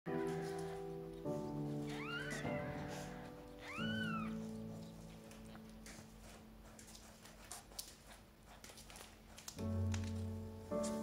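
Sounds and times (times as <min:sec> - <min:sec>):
soft background music: 0:00.1 - 0:11.0
cat meowing: 0:01.9 - 0:04.4.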